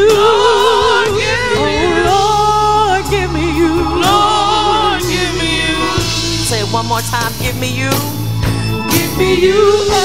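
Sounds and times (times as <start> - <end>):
women singing gospel: 0.0 - 8.1, 8.9 - 10.0
keyboard accompaniment: 0.0 - 10.0.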